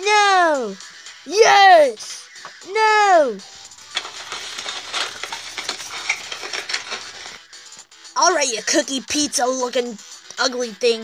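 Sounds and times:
paper rustling and tapping: 3.8s - 7.4s.

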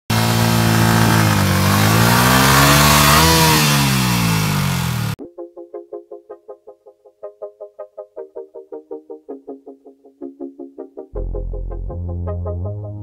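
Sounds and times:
motorcycle engine revving: 0.1s - 5.2s
quiet plucked-note music: 5.2s - 13.0s.

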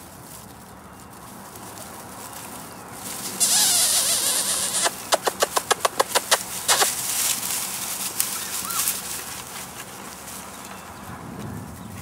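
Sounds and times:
rustling in dry grass: 0.0s - 12.0s
sharp clicks: 3.4s - 7.0s.

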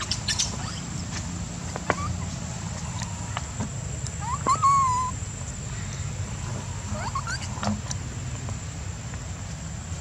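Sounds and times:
monkey call: 0.0s - 1.0s, 1.7s - 3.6s, 4.2s - 8.0s.

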